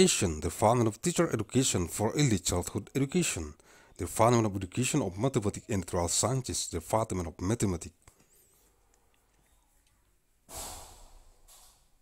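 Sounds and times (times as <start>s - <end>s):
person breathing close to microphone: 3.6s - 4.0s, 10.5s - 12.0s.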